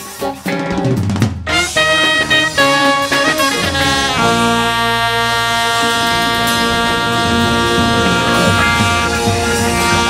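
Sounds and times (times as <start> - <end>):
horn: 1.4 - 10.0
jazz band sustained note: 1.4 - 10.0.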